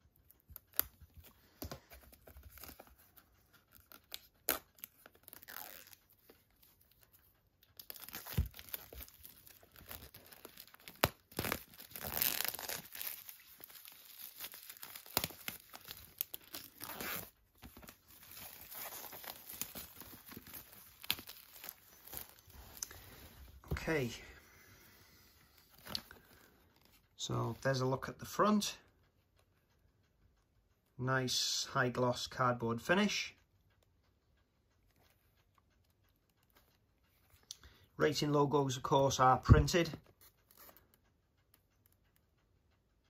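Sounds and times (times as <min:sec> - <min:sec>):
plastic wrap crinkling: 0:00.3 - 0:23.8
scissors snipping plastic: 0:07.8 - 0:22.9.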